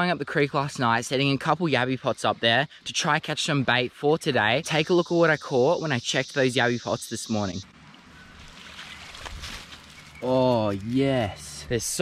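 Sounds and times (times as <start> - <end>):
faint water splashing: 5.2 - 10.9.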